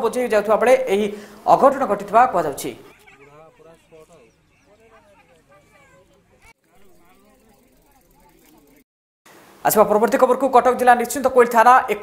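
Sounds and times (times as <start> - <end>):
faint voices talking: 2.8 - 8.8.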